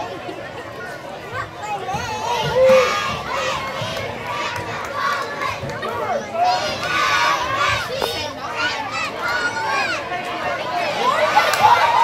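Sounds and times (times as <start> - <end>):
crowd shouting and cheering: 0.0 - 12.0
loud high call: 2.4 - 3.2.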